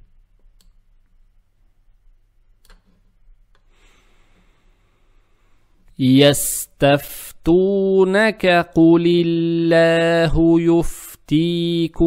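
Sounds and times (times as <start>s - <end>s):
soft hiss: 0.0s - 7.5s
low electrical hum: 0.0s - 12.0s.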